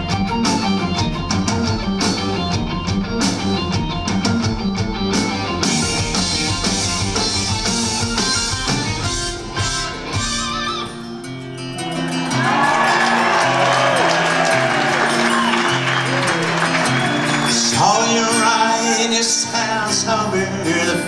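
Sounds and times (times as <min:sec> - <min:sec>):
rock band playing: 0:00.0 - 0:21.0.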